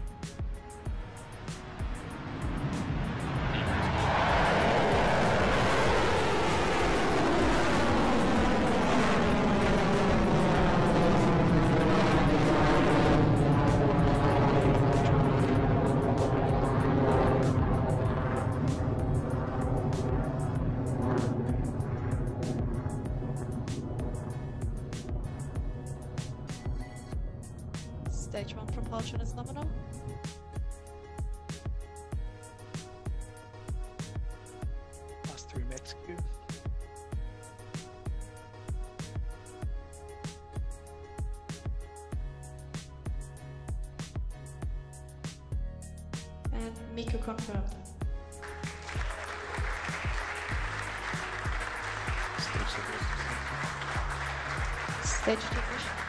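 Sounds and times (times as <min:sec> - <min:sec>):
rocket engines roaring: 0:00.8 - 0:31.1, 0:48.4 - 0:56.0.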